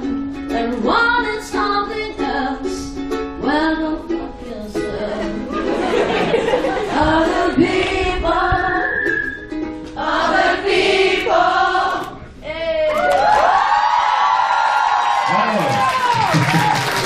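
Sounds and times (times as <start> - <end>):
crowd singing unaccompanied: 5.0 - 12.4.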